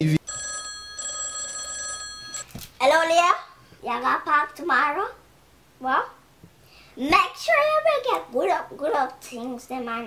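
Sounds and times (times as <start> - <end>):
mobile phone ringing: 0.2 - 2.5.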